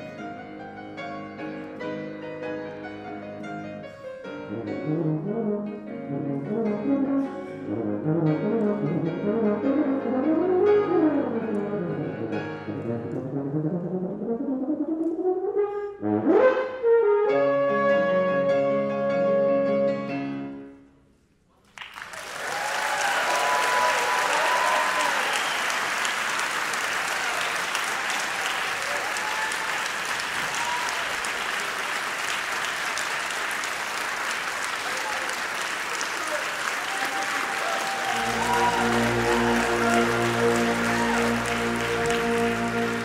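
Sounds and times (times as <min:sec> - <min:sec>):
audience applause: 0:21.7 - 0:43.0
shouts and whoops: 0:22.4 - 0:25.8, 0:27.1 - 0:31.3, 0:36.3 - 0:41.7.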